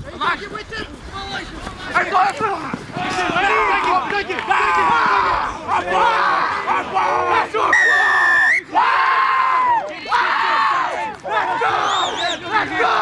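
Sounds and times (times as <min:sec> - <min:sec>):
people shouting and yelling: 0:00.0 - 0:13.0
referee's whistle blast: 0:07.7 - 0:08.7.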